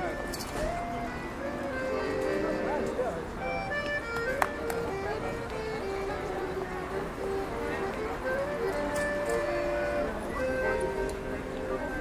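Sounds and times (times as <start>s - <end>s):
accordion playing: 0.0s - 12.0s
busy street background: 0.0s - 12.0s
people talking: 0.0s - 12.0s.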